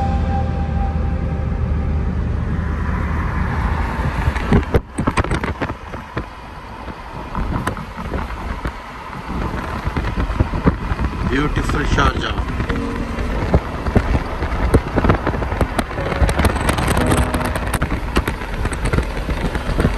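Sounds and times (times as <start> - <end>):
car road and engine rumble: 0.0 - 19.9
wind noise on microphone: 2.2 - 19.9.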